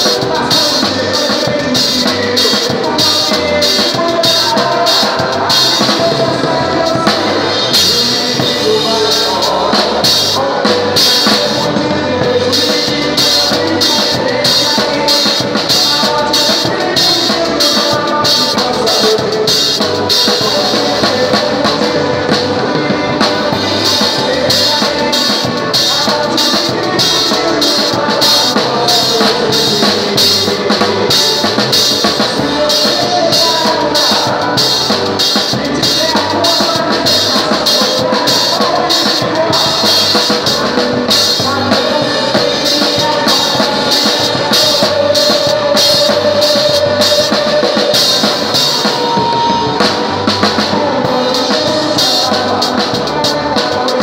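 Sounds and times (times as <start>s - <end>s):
band melody instruments: 0.0s - 54.0s
drum kit playing fast beat: 0.0s - 54.0s.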